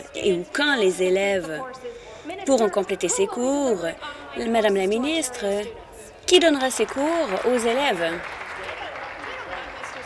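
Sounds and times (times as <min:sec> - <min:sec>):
crowd applauding: 0:06.8 - 0:10.0.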